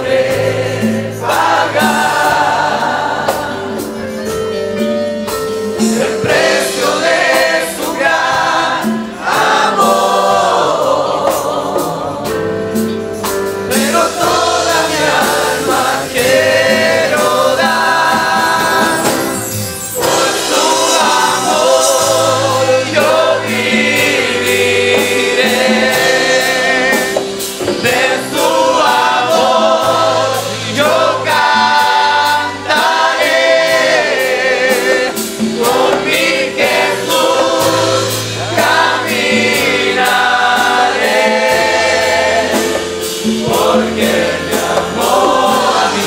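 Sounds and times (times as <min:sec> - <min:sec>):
choir singing a hymn: 0:00.0 - 0:46.0
instrumental accompaniment with beat: 0:00.0 - 0:46.0.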